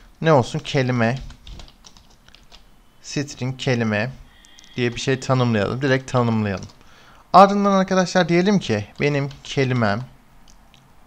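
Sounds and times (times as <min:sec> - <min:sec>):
typing on computer keyboard: 0:01.1 - 0:02.7, 0:06.4 - 0:06.8, 0:08.9 - 0:10.1.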